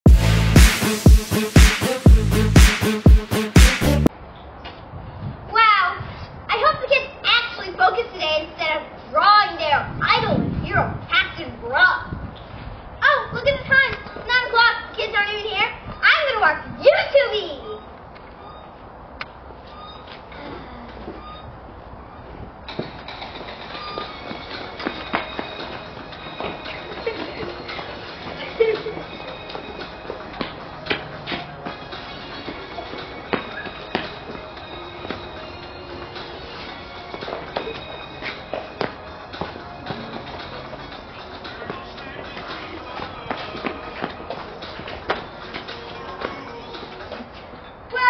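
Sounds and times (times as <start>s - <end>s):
background music with sharp beats: 0.0s - 4.1s, 24.0s - 46.9s.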